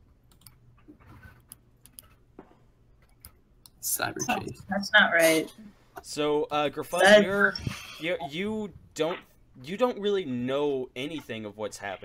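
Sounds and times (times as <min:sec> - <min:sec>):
low electrical hum: 0:00.0 - 0:12.0
faint keyboard clicks: 0:00.2 - 0:03.8.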